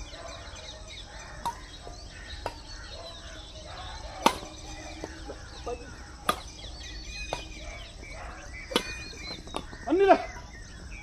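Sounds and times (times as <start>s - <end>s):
birds chirping: 0.0s - 11.0s
rackets striking shuttlecock: 1.4s - 2.8s, 4.1s - 8.0s, 8.6s - 9.8s.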